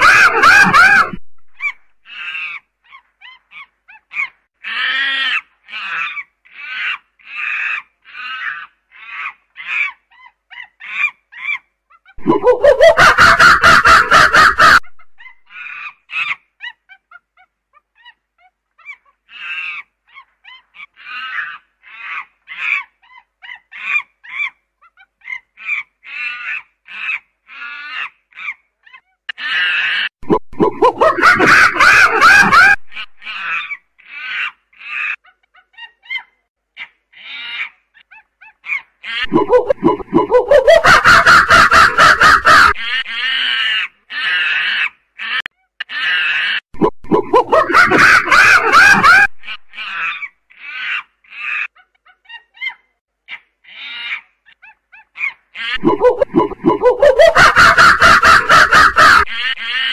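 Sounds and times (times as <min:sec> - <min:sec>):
loud unbroken primate calling: 0:00.0 - 0:18.2, 0:30.8 - 0:46.6, 0:47.3 - 0:59.9.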